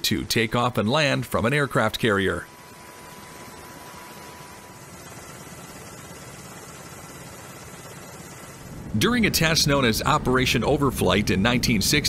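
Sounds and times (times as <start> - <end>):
steady hiss: 0.0 - 12.0
low rumble: 8.6 - 12.0.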